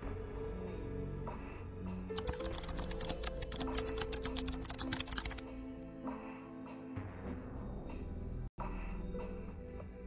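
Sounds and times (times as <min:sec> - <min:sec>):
background music: 0:00.0 - 0:10.0
keyboard typing clicks: 0:02.2 - 0:05.4.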